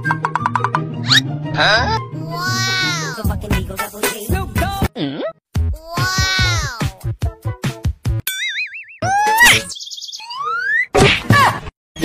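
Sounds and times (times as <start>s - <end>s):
cartoon whack with bending tones: 10.8s - 11.5s.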